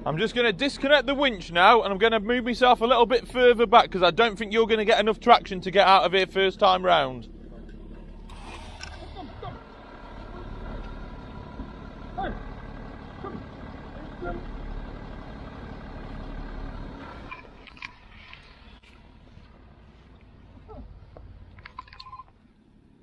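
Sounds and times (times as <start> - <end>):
vehicle engine idling: 0.0 - 23.0.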